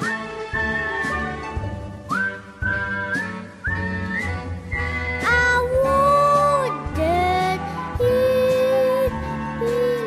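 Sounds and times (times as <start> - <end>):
instrumental accompaniment: 0.0 - 10.0
whistled melody: 0.0 - 10.0.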